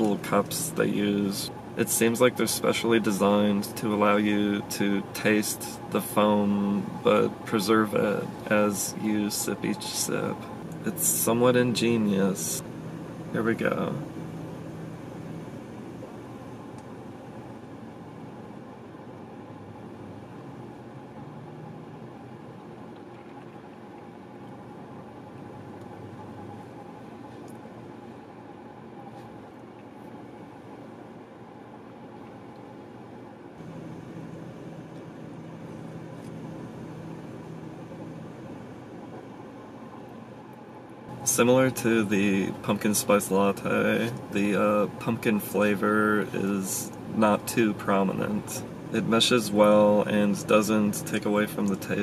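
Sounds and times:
car engine idling: 0:00.0 - 0:16.8
air-conditioning fan: 0:00.0 - 0:52.0.

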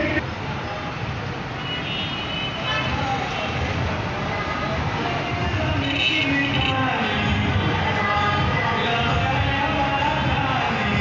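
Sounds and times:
traffic engines rumbling: 0:00.0 - 0:11.0
voices: 0:02.6 - 0:11.0.

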